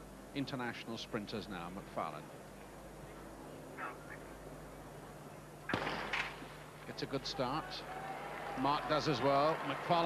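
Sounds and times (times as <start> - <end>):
starter's pistol crack: 5.7 - 6.4.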